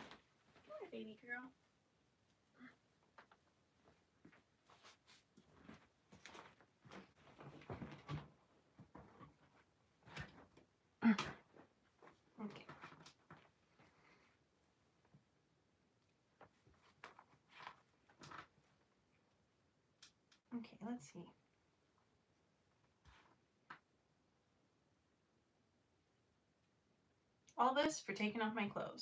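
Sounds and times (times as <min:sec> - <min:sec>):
faint rustles and handling noises: 0:00.0 - 0:19.5, 0:21.4 - 0:24.0.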